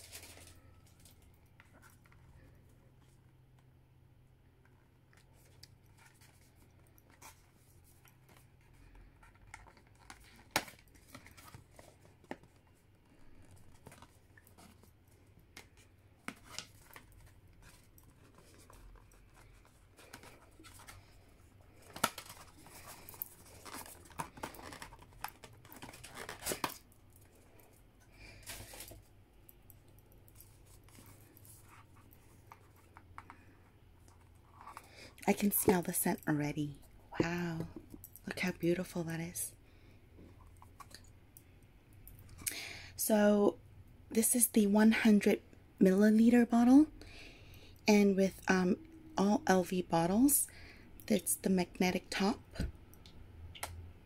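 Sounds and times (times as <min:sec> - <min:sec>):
packaging rustling and scraping: 0:00.0 - 0:03.2, 0:05.2 - 0:29.2.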